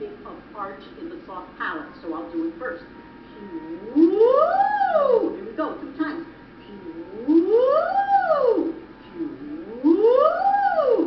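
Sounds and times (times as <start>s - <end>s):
woman singing vocal sirens: 3.4s - 5.6s, 6.7s - 11.0s.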